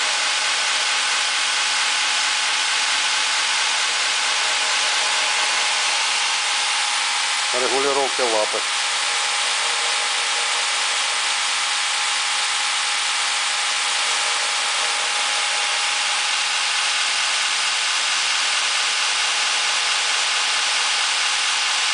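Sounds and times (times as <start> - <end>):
belt grinder running: 0.0 - 21.9.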